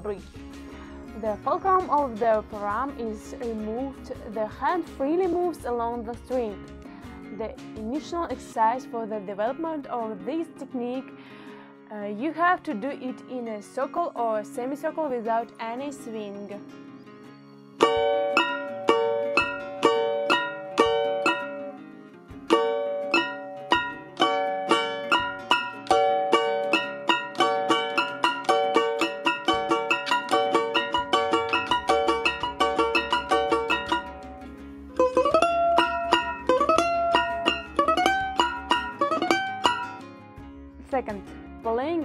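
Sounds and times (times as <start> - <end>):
domra plucked with a pick: 17.8 - 40.5.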